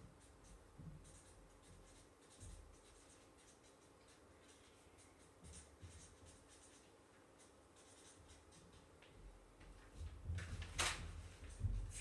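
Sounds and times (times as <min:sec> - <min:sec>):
marker scratching on paper: 0:00.0 - 0:09.0.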